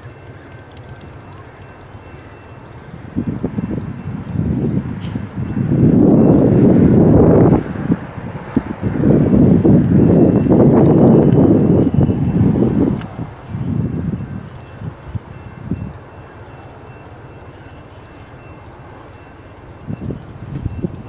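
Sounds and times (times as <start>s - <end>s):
train rumble: 0.0s - 21.0s.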